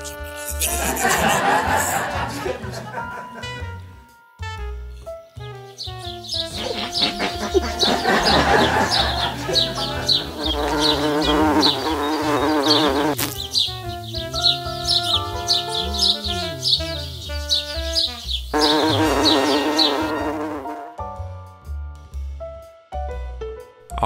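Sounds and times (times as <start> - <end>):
background music: 0.0 - 24.0
housefly buzzing: 5.5 - 21.0.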